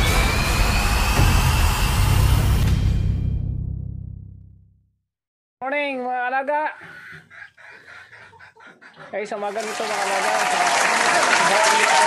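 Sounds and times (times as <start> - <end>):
chickens clucking: 6.8 - 9.7.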